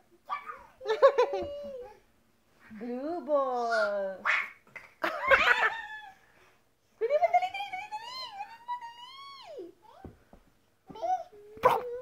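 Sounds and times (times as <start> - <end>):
toddler vocal sounds: 10.9 - 12.0.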